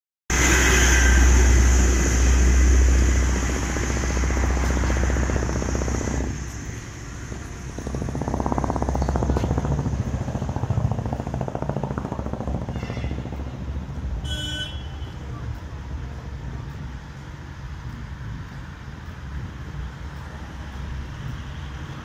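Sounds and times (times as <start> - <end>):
engine rumble with rapid pulse: 0.3 - 22.0.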